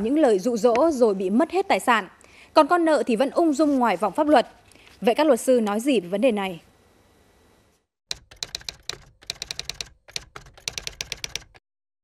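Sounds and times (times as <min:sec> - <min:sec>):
rapid keystroke clicks: 0:08.1 - 0:11.6.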